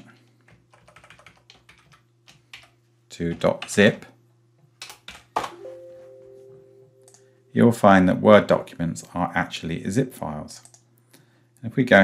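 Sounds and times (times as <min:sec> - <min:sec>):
keyboard typing: 0:00.5 - 0:03.9, 0:04.8 - 0:05.6, 0:07.0 - 0:07.3.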